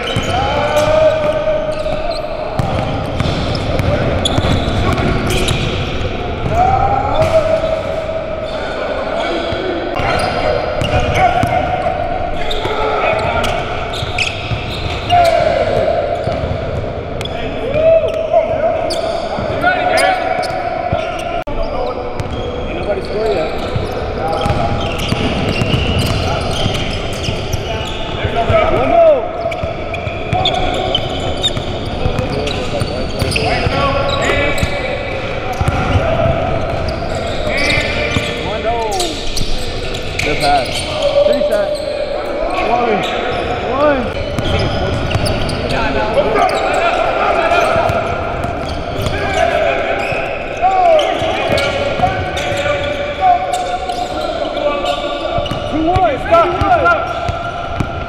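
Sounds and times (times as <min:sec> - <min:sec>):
players calling out: 0:00.0 - 0:58.0
sneakers squeaking: 0:00.0 - 0:58.0.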